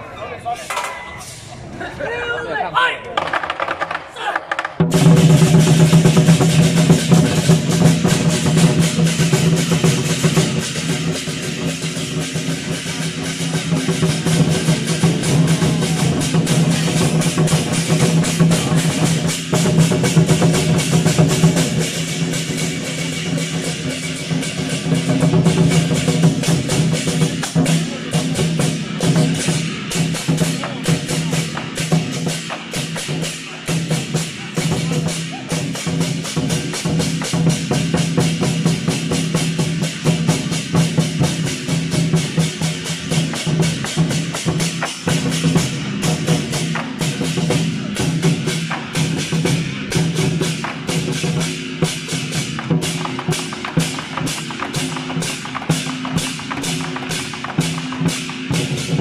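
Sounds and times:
large barrel drums: 0.0 - 59.0
hand cymbals clashing: 0.6 - 1.6, 4.9 - 59.0.

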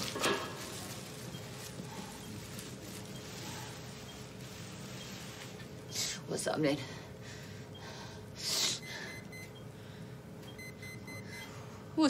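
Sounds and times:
faint electronic beeps: 10.5 - 11.5.

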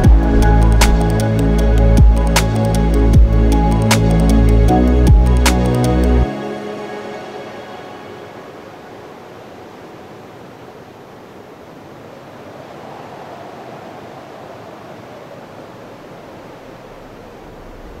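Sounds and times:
music: 0.0 - 8.9
steady rushing hiss: 0.0 - 18.0.

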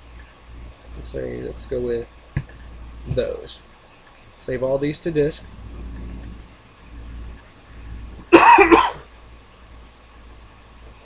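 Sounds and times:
person coughing: 8.3 - 9.0.

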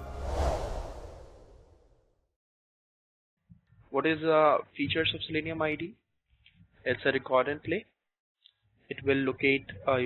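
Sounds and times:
whoosh swish: 0.0 - 2.0.

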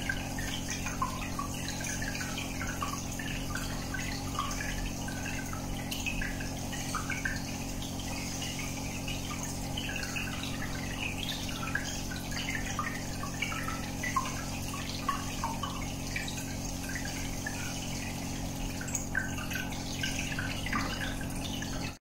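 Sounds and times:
air bubbles gurgling and popping: 0.0 - 22.0
steady low hum: 0.0 - 22.0.

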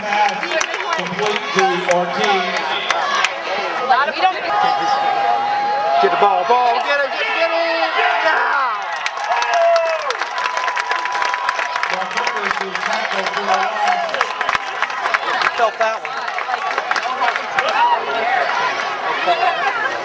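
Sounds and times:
crowd cheering and shouting: 0.0 - 20.0
rapid clapping: 8.8 - 17.8.

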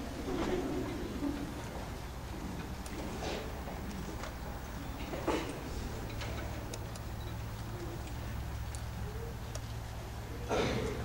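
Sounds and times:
steady low hum: 0.0 - 11.0
small clicks and rustles: 0.4 - 10.0.

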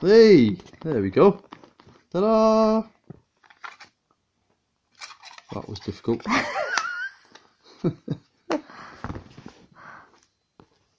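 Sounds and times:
hands handling plastic remote: 3.4 - 4.0, 5.0 - 7.5.

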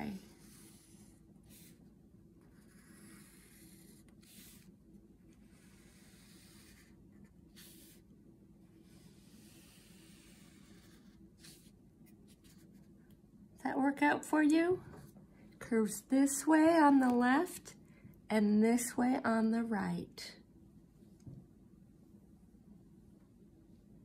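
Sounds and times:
pencil scratching on paper: 0.0 - 8.1, 8.7 - 12.9.

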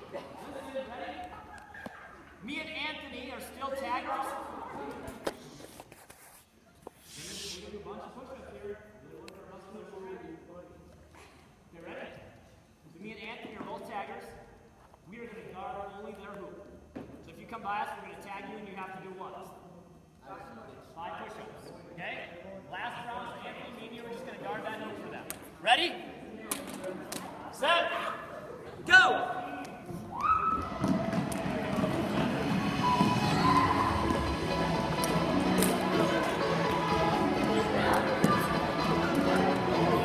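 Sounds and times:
indistinct voices in a gym: 0.0 - 40.0
brief hiss: 7.0 - 7.7.

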